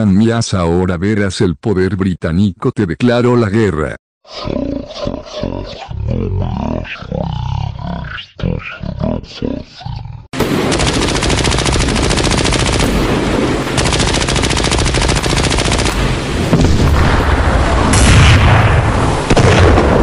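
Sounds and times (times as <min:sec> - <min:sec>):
rapid machine-gun sound effects: 0:10.4 - 0:16.3.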